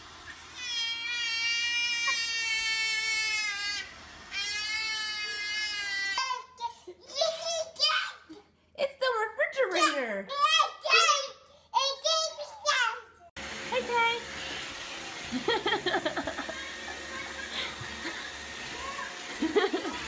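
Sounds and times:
robot vacuum humming: 0.0 - 5.9, 13.4 - 20.0
baby squealing: 0.6 - 6.6.

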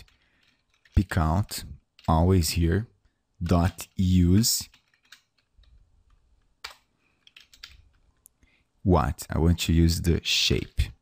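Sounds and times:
computer keyboard keystrokes: 0.0 - 1.1, 4.6 - 8.0.

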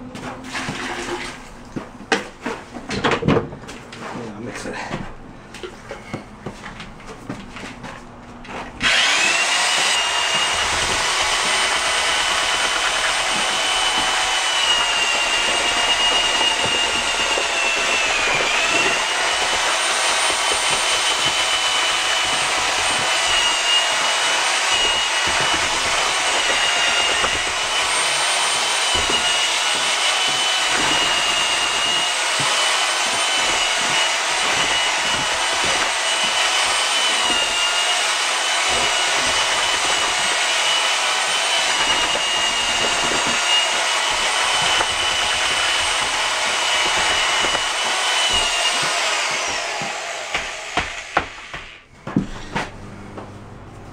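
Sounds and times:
drill motor whine mixing mortar: 8.5 - 52.7.

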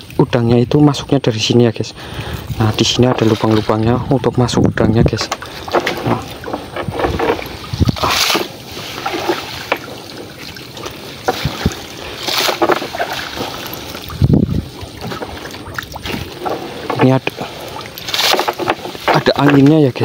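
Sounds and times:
water splashing and trickling: 0.0 - 20.0
wind buffeting microphone: 2.0 - 18.0
wet netting being shaken: 2.5 - 4.2, 5.6 - 20.0.

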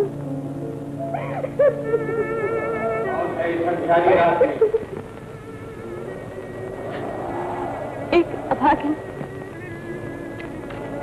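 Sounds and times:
soft film music: 0.0 - 11.0
soundtrack hiss and rumble: 0.0 - 11.0.

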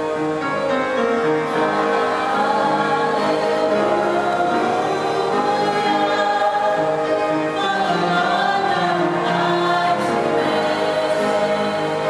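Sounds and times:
gospel vocal ensemble singing: 0.0 - 12.0.

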